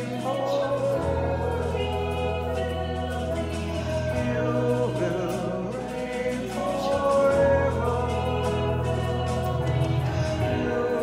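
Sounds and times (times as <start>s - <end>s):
congregation singing: 0.0s - 11.0s
instrumental backing: 0.0s - 11.0s
sustained low bass: 0.0s - 11.0s.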